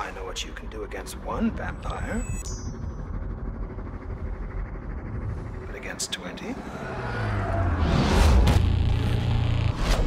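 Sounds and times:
low steady rumble: 0:00.0 - 0:07.8.

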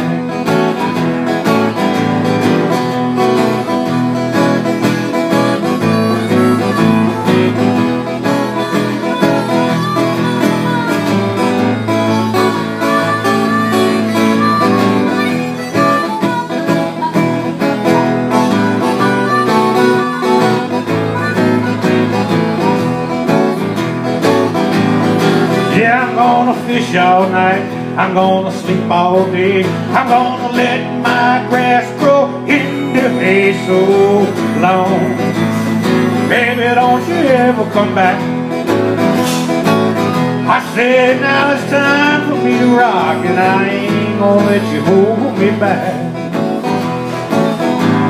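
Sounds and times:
acoustic guitar lead line: 0:00.0 - 0:48.0
strummed guitar chords: 0:00.0 - 0:48.0.

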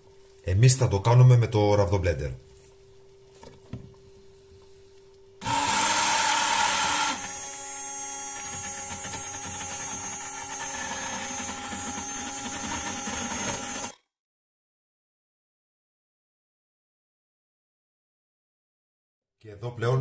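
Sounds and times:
immersion blender motor whining: 0:05.4 - 0:14.0.

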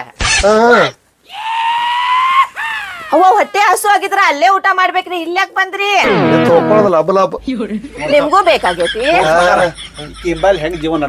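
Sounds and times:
person talking: 0:06.0 - 0:09.3.

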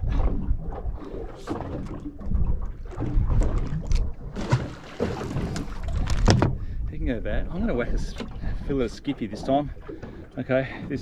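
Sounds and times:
wind rumbling on microphone: 0:00.0 - 0:09.2
water slapping boat hull: 0:00.0 - 0:11.0
knocks and clatter on deck: 0:05.4 - 0:06.6.

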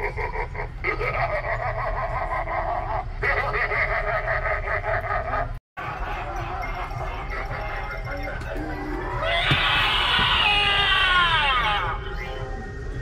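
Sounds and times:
recorded cackling laugh: 0:00.0 - 0:08.8
steady low hum: 0:00.0 - 0:13.0.

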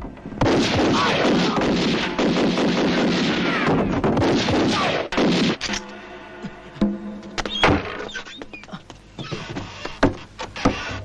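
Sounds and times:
rapid handgun gunfire: 0:00.4 - 0:05.7.

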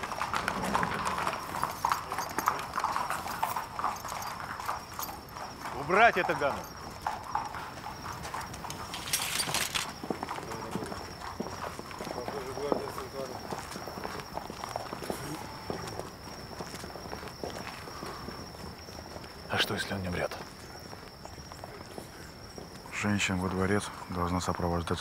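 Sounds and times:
horse hooves on stone: 0:00.0 - 0:25.0.

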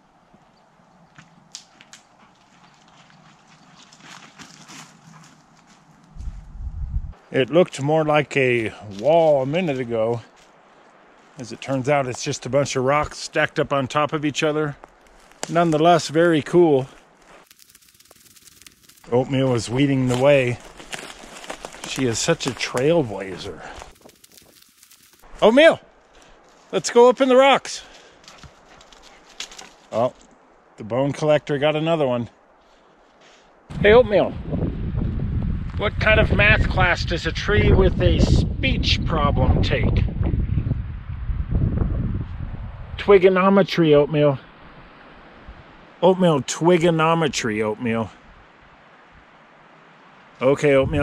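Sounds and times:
footsteps on dry pine needles: 0:01.1 - 0:06.6, 0:08.6 - 0:11.8, 0:14.7 - 0:30.3
wind buffeting microphone: 0:06.2 - 0:07.2, 0:33.7 - 0:43.0, 0:50.8 - 0:51.0.

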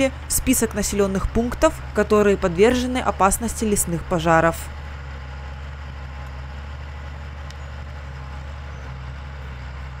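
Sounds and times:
bulldozer diesel engine running: 0:00.0 - 0:10.0.

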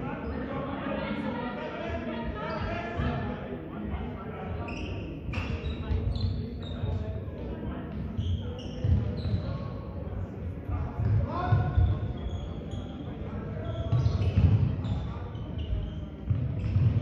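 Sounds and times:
sneakers squeaking: 0:02.3 - 0:03.2, 0:04.5 - 0:10.0, 0:10.7 - 0:17.0.

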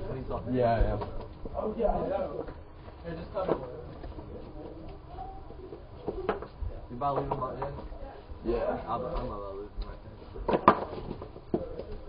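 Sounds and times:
faint cooing bird call: 0:04.7 - 0:06.4.

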